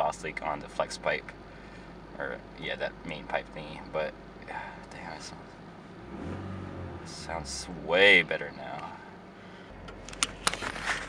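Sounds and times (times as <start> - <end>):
car engine drone from inside: 0.0 - 11.0.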